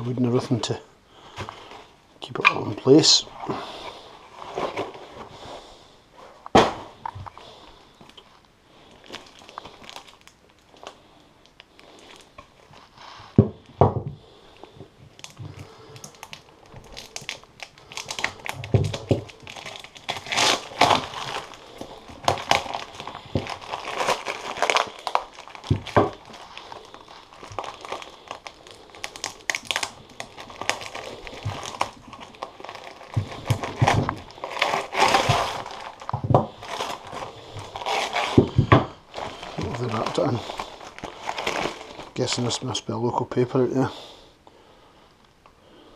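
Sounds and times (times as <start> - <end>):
newspaper crinkling and rustling: 2.5 - 5.6, 6.5 - 13.4, 14.2 - 42.8
paper tearing: 20.1 - 21.8.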